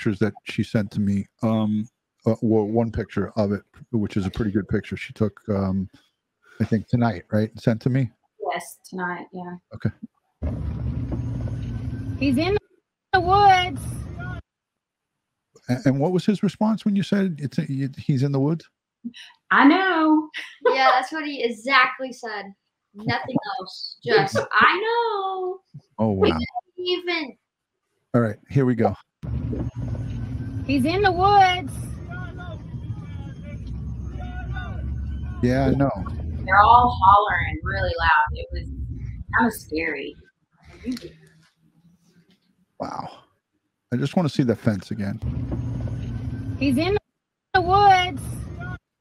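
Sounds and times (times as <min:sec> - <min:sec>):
distant people hollering: 0:00.0 - 0:05.9, 0:06.6 - 0:08.1, 0:15.7 - 0:18.6, 0:24.1 - 0:24.8, 0:26.0 - 0:26.5, 0:28.2 - 0:29.0, 0:30.7 - 0:38.6, 0:42.8 - 0:43.1, 0:44.0 - 0:45.2
car road and wind rumble: 0:10.4 - 0:12.5, 0:29.2 - 0:40.1, 0:45.2 - 0:46.9.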